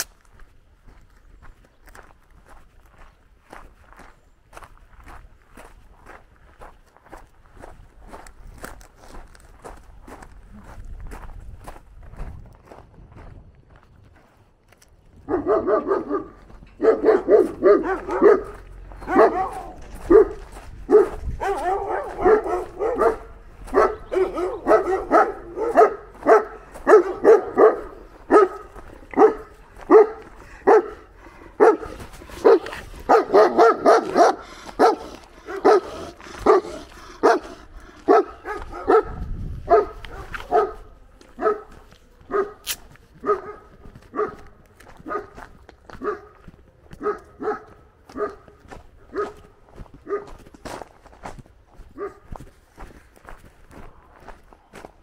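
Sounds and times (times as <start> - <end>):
large dog barking: 15.2 - 46.4, 47.0 - 50.4, 51.9 - 52.3.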